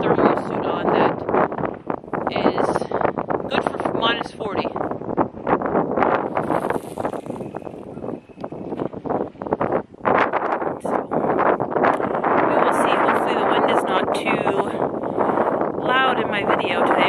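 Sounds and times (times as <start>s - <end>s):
woman talking: 0.0s - 1.2s, 2.3s - 2.9s, 3.5s - 4.8s, 12.5s - 14.8s, 15.8s - 17.0s
wind buffeting microphone: 0.0s - 17.0s.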